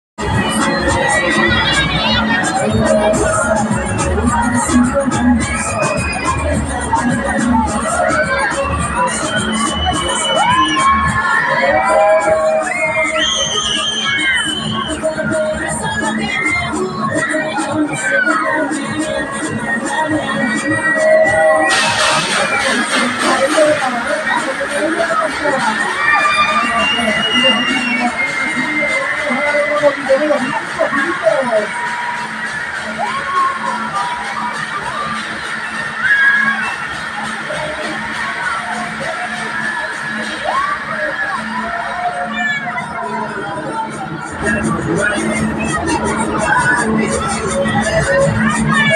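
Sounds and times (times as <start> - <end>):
loud fairground music: 0.2 - 48.9
riders screaming and shouting: 0.4 - 19.2.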